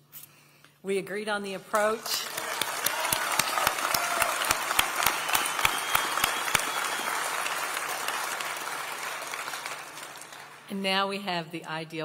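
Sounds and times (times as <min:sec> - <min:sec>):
audience applauding: 0:01.8 - 0:10.7.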